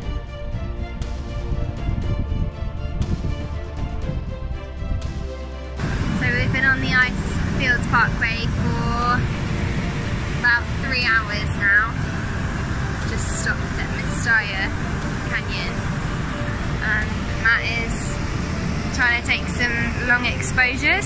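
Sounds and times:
brief music: 0.0s - 21.0s
steady low rumble: 0.0s - 21.0s
woman talking: 6.1s - 9.3s, 10.4s - 12.0s, 13.0s - 15.8s, 16.8s - 18.2s, 18.9s - 21.0s.

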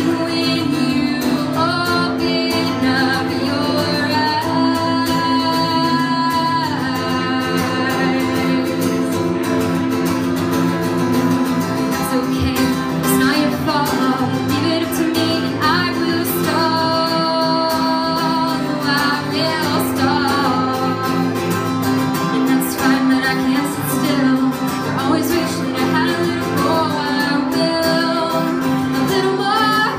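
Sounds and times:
woman singing: 0.0s - 10.4s, 11.1s - 29.9s
acoustic guitar: 0.0s - 29.9s.

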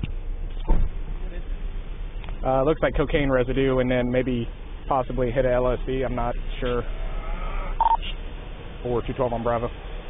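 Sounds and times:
short electronic beep: 7.8s - 8.0s.

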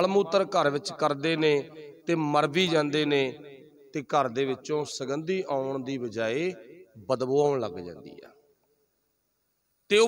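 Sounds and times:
man talking: 0.0s - 3.4s, 4.0s - 8.4s.

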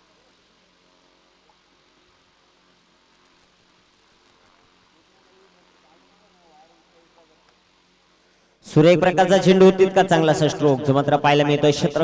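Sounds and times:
faint distant voices: 4.2s - 8.2s.

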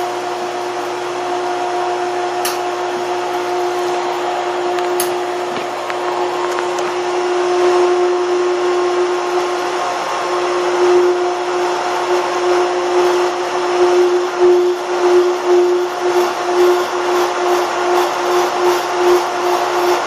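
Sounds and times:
pool pump humming: 0.0s - 20.0s.

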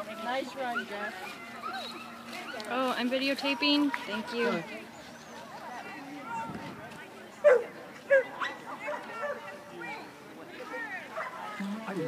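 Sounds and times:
dog barking: 7.4s - 9.4s.

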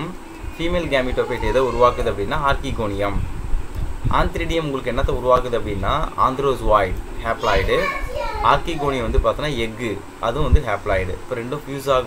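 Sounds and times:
person talking: 0.0s - 3.2s, 4.1s - 12.0s.

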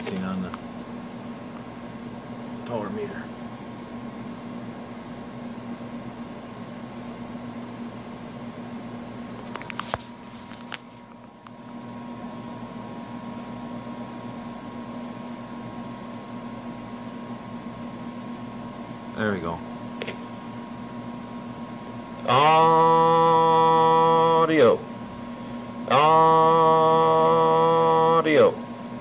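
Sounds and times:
electrical hum and hiss: 0.0s - 29.0s.

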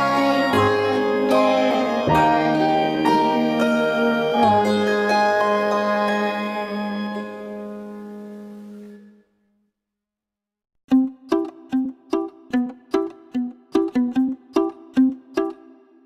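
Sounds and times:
ambient music: 0.0s - 9.2s
plucked-string tune: 10.9s - 16.0s.

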